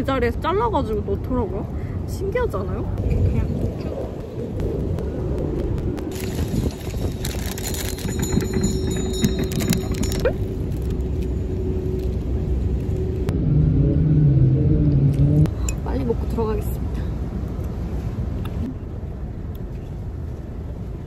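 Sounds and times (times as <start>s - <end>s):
steady hum: 0.0s - 7.6s, 8.4s - 19.4s
city street traffic rumble: 0.0s - 21.0s.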